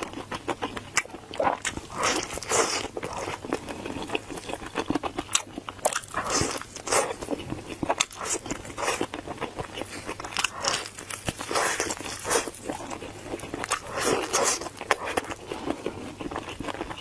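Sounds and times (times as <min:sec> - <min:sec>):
chewing: 0:00.0 - 0:17.0.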